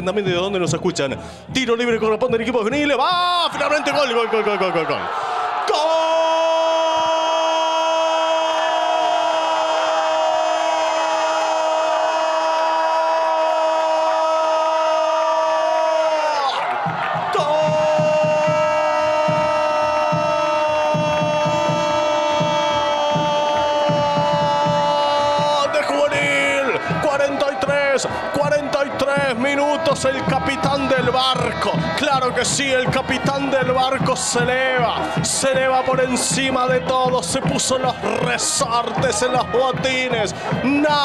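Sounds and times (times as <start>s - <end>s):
music with steady beat: 16.8s - 41.0s.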